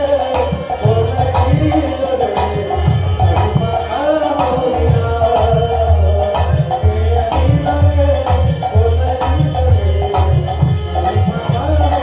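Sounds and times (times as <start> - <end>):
hand cymbals jingling: 0.0 - 12.0
harmonium and violin melody: 0.0 - 12.0.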